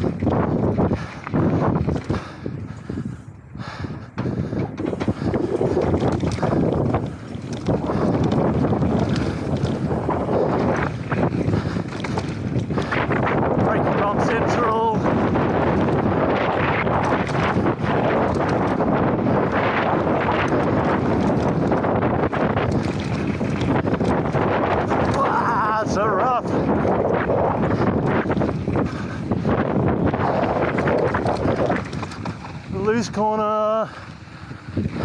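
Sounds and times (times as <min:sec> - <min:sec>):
wind rushing over microphone: 0:00.0 - 0:35.0
bike rattling knocks: 0:04.2 - 0:13.5
tyre roar on dirt: 0:04.8 - 0:26.0.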